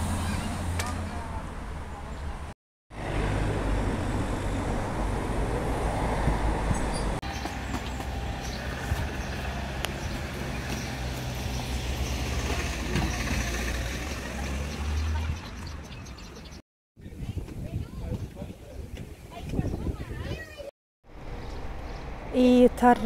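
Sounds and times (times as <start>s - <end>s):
road traffic rumble: 0.0s - 16.6s, 18.8s - 23.0s.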